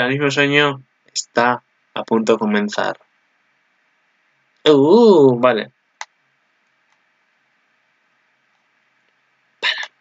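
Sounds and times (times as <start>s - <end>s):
man's voice: 0.0s - 3.0s, 4.7s - 5.7s
faint steady hiss: 0.0s - 10.0s.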